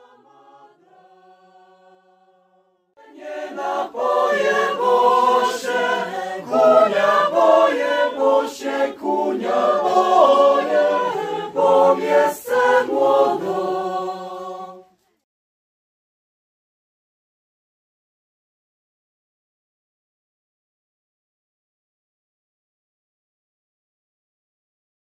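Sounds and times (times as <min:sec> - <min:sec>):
choir singing a cappella: 0:00.0 - 0:15.0.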